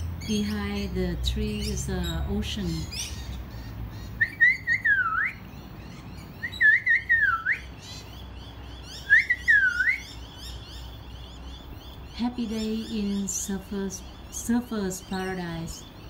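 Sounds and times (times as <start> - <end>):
birds twittering: 0.0 - 16.0
bird whistling phrase: 4.2 - 5.4, 6.4 - 7.7, 8.9 - 10.2.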